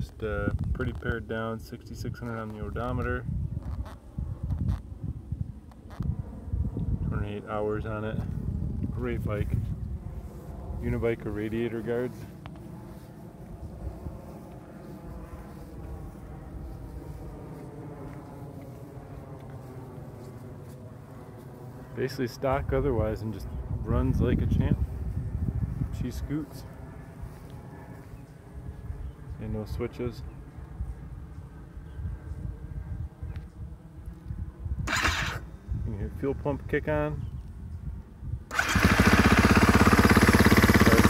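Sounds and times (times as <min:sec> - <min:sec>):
wind buffeting microphone: 0:00.0 - 0:20.6, 0:22.4 - 0:41.0
engine-like drone: 0:05.5 - 0:24.8, 0:38.5 - 0:41.0.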